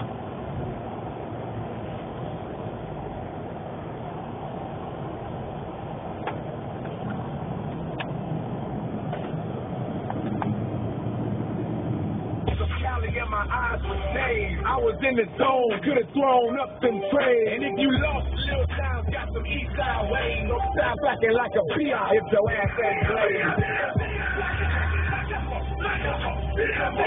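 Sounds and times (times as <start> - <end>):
engine and tyre rumble: 0.0 - 27.0
rapping over a heavy bass beat: 12.5 - 27.0.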